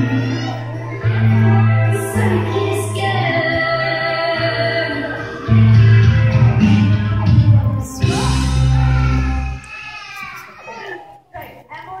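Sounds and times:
young children chattering: 0.0s - 3.3s, 4.6s - 12.0s.

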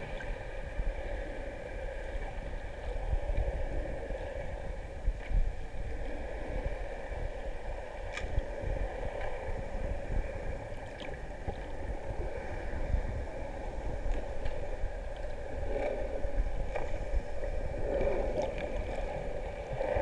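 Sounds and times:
low rumble of moving water: 0.0s - 20.0s.

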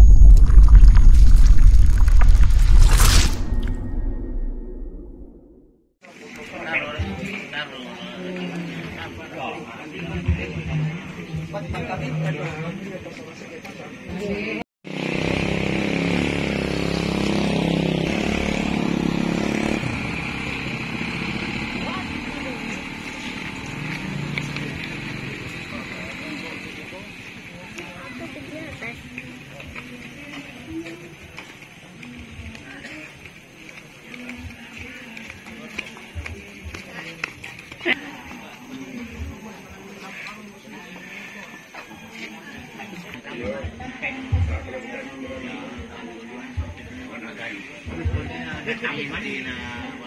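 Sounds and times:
deep rumble with crackles: 0.0s - 5.5s
high-pitched whine: 0.0s - 5.7s
whoosh: 0.0s - 5.8s
motorcycle engine running: 14.9s - 31.3s
voices: 15.9s - 50.0s.

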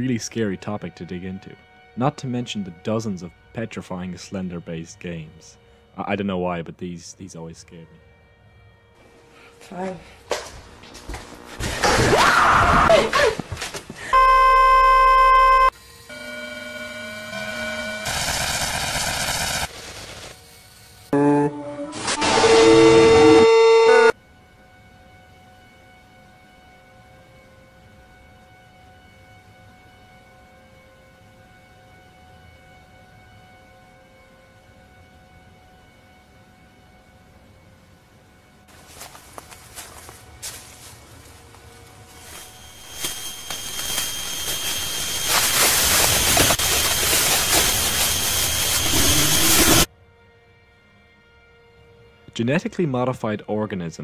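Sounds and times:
loud steady electronic beep: 14.1s - 18.2s, 21.2s - 24.1s, 42.3s - 49.9s
tones stepping in pitch: 14.2s - 15.7s, 21.2s - 24.1s
thin steady high whine: 14.2s - 18.1s, 40.9s - 49.9s
loud static hiss with tone: 42.2s - 49.9s.

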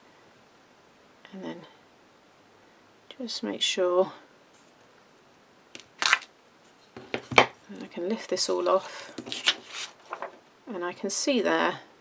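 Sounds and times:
plastic rustling scrape: 6.0s - 10.4s.

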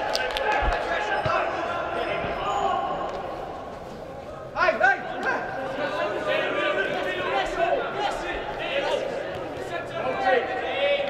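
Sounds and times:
players shouting: 0.0s - 11.0s.

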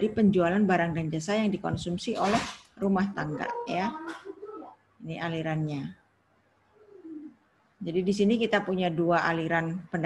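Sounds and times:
woman speaking: 0.0s - 4.0s, 5.0s - 6.0s, 7.8s - 10.0s
faint cooing call: 3.4s - 4.8s, 6.8s - 7.4s.

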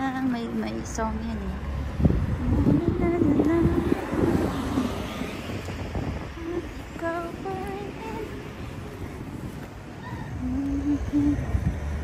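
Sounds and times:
road traffic noise: 0.0s - 12.0s
wind on microphone: 0.0s - 12.0s
woman humming: 10.1s - 11.6s.

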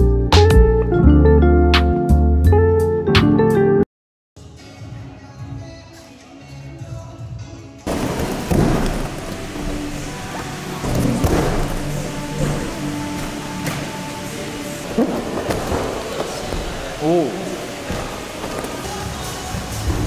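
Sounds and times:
background music: 0.0s - 3.8s, 4.4s - 20.0s
heavy thuds on gym mats: 7.9s - 17.0s.

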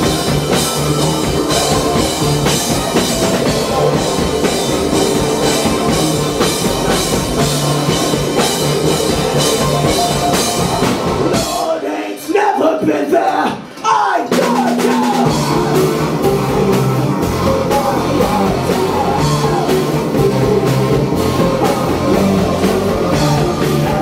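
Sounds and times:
sliding melodic line: 0.0s - 11.5s
live rock band playing: 0.0s - 11.8s, 14.3s - 24.0s.

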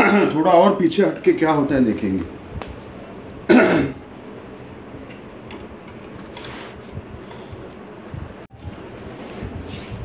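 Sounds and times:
man clearing throat: 0.0s - 0.4s, 3.5s - 4.0s
soft rustle: 9.0s - 10.0s.

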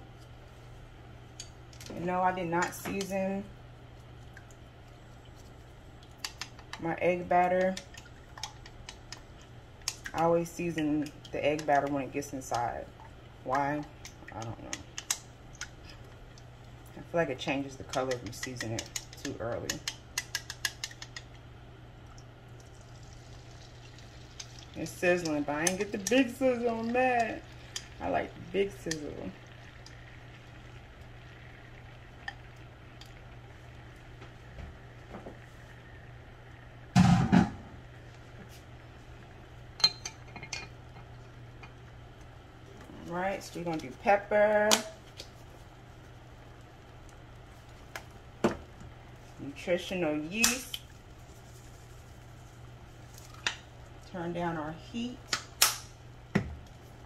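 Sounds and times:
steady low hum: 0.0s - 57.0s
eggs sizzling in a pan: 0.3s - 37.0s, 37.8s - 57.0s
sharp snap: 55.3s - 55.9s.

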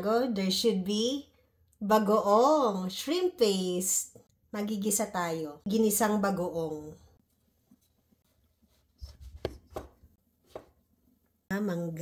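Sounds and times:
knife cutting on cutting board: 9.0s - 10.8s.

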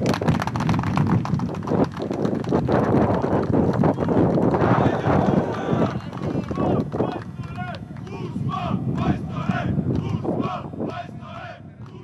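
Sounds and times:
football fans shouting and chanting: 4.5s - 12.0s.

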